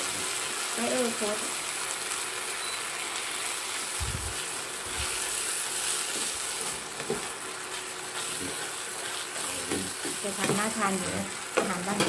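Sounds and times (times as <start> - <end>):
food sizzling in a frying pan: 0.0 - 12.0
spatula scraping a pan: 4.3 - 11.1.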